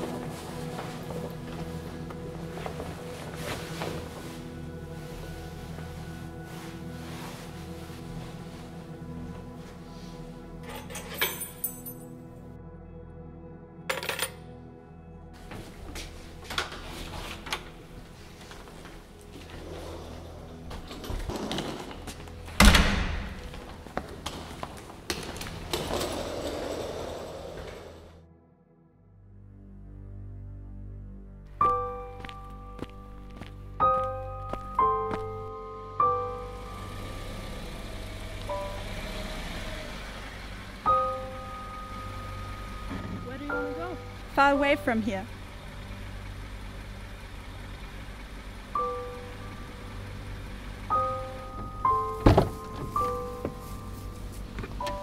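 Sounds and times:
quiet background music: 0.0s - 55.0s
car engine idling: 33.0s - 55.0s.

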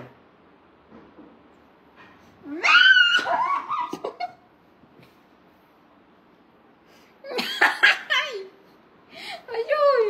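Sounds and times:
person squealing: 2.5s - 4.0s.

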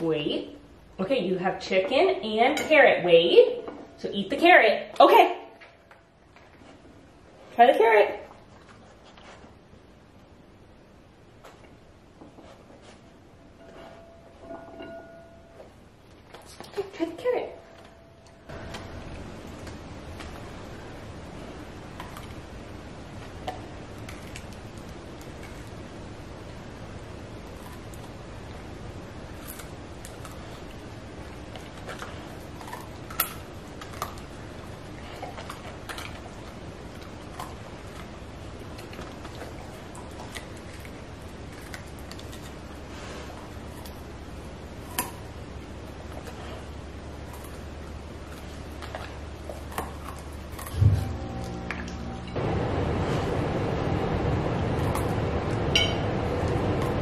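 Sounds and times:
steady low hiss: 0.0s - 57.0s
dog crunching carrot: 18.6s - 26.1s, 27.2s - 52.0s
low boom: 50.7s - 57.0s.

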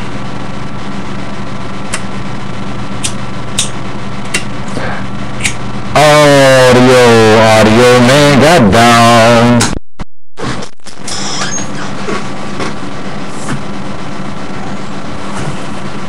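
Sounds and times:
steady hum: 0.0s - 9.8s, 10.4s - 16.0s
warbling pitched radio signal: 5.9s - 9.8s, 10.4s - 11.9s.

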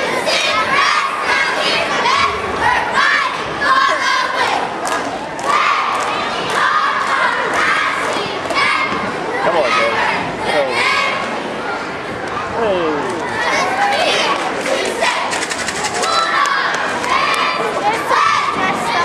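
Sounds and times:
crowd yelling and cheering: 0.0s - 19.0s.

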